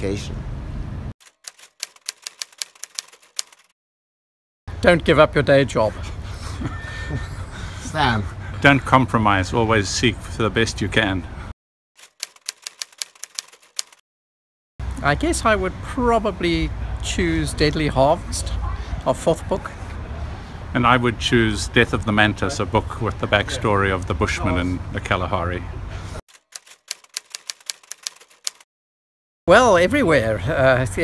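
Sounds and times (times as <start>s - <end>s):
outdoor background sound: 0.0s - 3.7s, 4.7s - 14.0s
typewriter key clicks: 1.4s - 3.7s, 12.0s - 14.0s, 26.5s - 28.6s.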